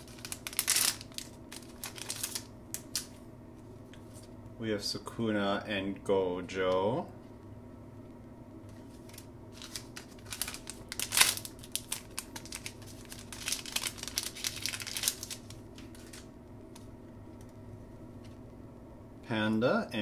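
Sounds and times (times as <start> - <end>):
plastic wrapper crinkling and tearing: 0.0 - 3.2, 8.9 - 16.9.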